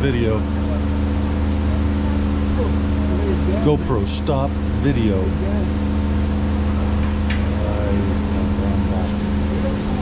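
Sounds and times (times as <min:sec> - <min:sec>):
faint voices: 0:00.0 - 0:05.9, 0:06.6 - 0:10.0
bus engine idling: 0:00.0 - 0:10.0.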